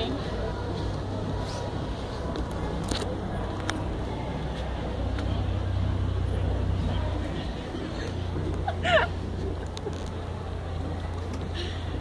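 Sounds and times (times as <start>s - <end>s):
rumble of passing cars: 0.0s - 12.0s.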